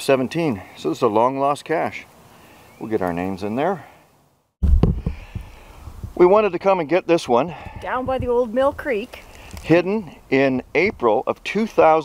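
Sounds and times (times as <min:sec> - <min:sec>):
heavy low thump: 0:04.6 - 0:06.2, 0:07.6 - 0:08.9.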